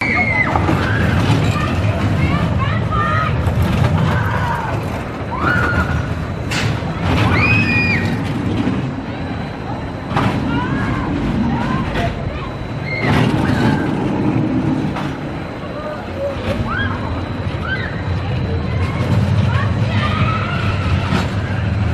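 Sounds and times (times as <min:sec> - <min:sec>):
people shouting and shrieking: 0:00.0 - 0:06.3, 0:07.0 - 0:08.4, 0:10.2 - 0:14.2, 0:15.8 - 0:21.9
roller coaster rumbling on track: 0:00.0 - 0:21.9.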